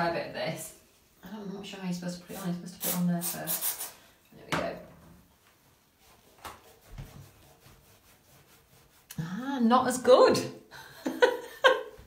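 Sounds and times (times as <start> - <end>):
cloth rubbing on ceramic lid: 5.6 - 9.6.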